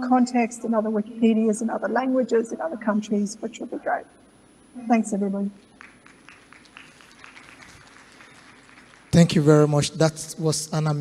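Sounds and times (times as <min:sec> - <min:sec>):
audience clapping: 0:05.8 - 0:09.7.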